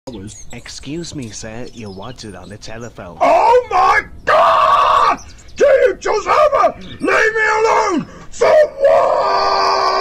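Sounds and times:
person shouting: 3.2 - 10.0.

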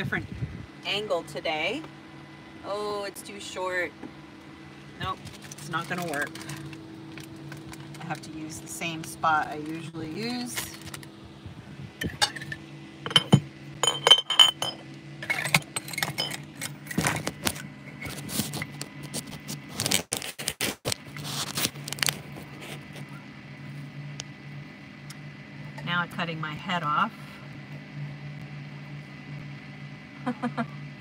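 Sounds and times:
steady low hum: 0.0 - 20.0, 20.9 - 31.0
cookware clinks and knocks: 12.1 - 16.4.

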